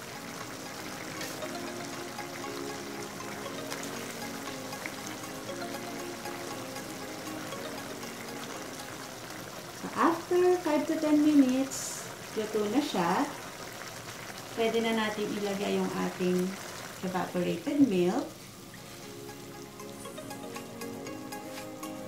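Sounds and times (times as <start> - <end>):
chicken sizzling in a frying pan: 0.0 - 5.5, 6.1 - 19.6
soft background music: 0.0 - 11.6, 17.4 - 22.0.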